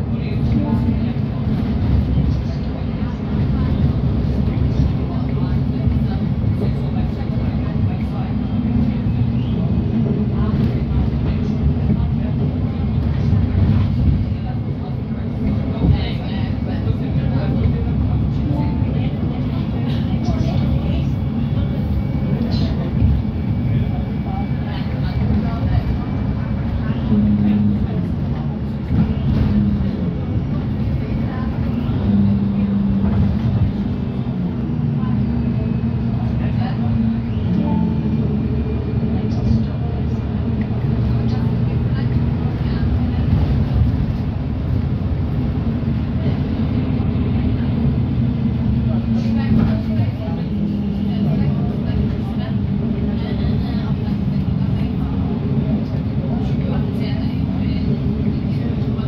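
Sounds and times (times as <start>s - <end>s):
bus diesel engine droning: 0.0s - 59.0s.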